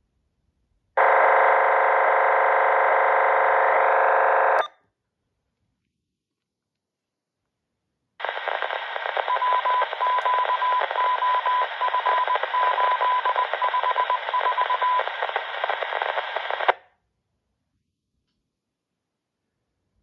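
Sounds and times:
radio static hiss: 0:08.2 - 0:16.8.

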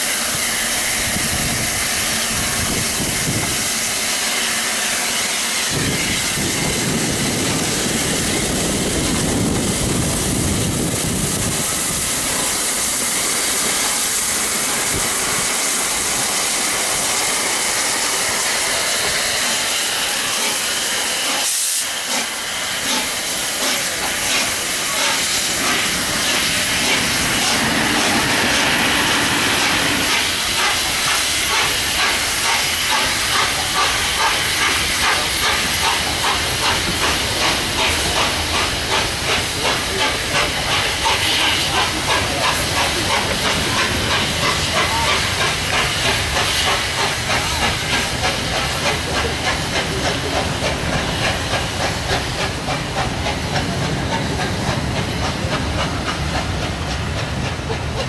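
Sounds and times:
steam hissing: 0:00.0 - 0:58.0
steam locomotive exhaust beats: 0:00.0 - 0:58.0
train coaches rolling past: 0:00.0 - 0:58.0.

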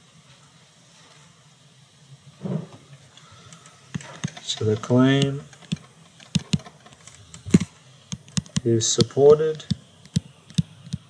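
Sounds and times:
stylus tapping on tablet: 0:05.2 - 0:11.0.

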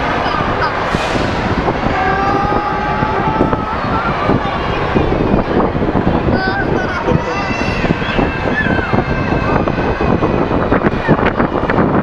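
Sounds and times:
amusement ride mechanical noise: 0:00.0 - 0:12.0.

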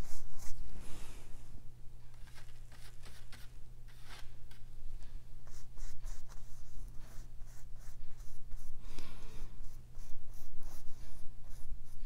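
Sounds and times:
paintbrush scrubbing canvas: 0:00.0 - 0:00.8, 0:02.2 - 0:04.2, 0:05.5 - 0:12.0.

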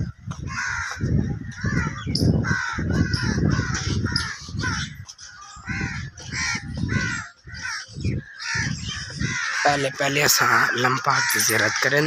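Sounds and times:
crows cawing: 0:00.0 - 0:12.0.

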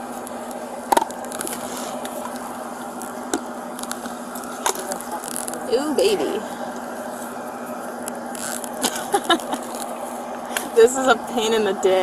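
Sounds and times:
steady hum: 0:00.0 - 0:12.0
rummaging in fabric bag: 0:01.2 - 0:10.4
person speaking: 0:04.7 - 0:06.7.

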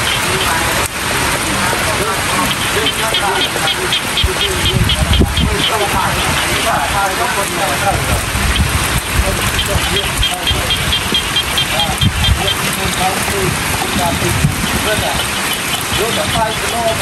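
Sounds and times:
chirping animal calls: 0:00.0 - 0:17.0
fast high ticks: 0:00.0 - 0:17.0
rain on leaves and water: 0:00.0 - 0:17.0.

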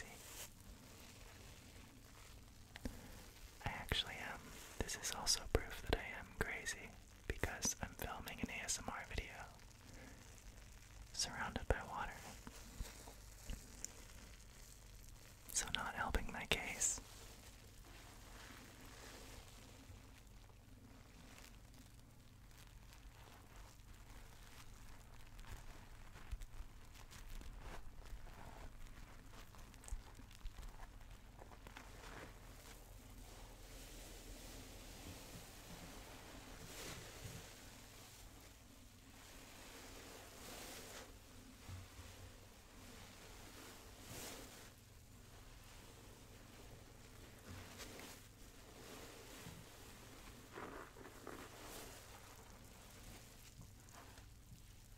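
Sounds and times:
foam crackling rustle: 0:00.0 - 0:54.9
soft whispering: 0:00.0 - 0:54.9.

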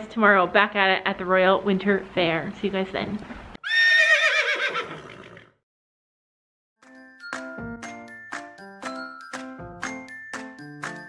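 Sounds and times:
horse whinnying: 0:03.6 - 0:05.6.

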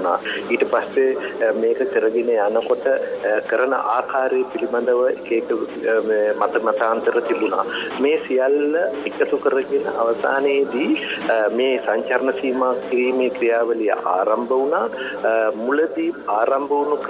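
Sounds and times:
person talking: 0:00.0 - 0:17.0.

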